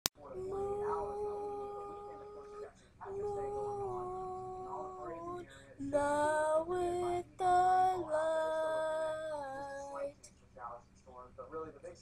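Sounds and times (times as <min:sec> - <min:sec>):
girl singing a long note: 0:00.4 - 0:10.2.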